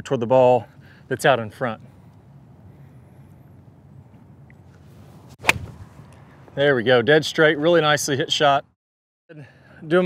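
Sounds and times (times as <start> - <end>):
golf iron striking ball: 5.4 - 6.2.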